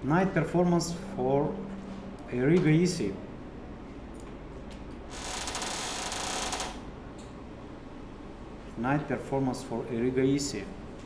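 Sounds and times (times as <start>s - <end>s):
low room hum: 0.0s - 11.0s
rapid mechanical clicks: 5.2s - 6.8s.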